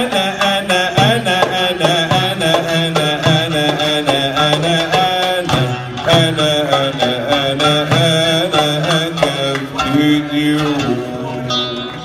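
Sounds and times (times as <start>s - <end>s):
darbuka strokes: 0.0s - 12.0s
man singing ornamented melody: 0.0s - 12.0s
plucked oud: 0.0s - 12.0s.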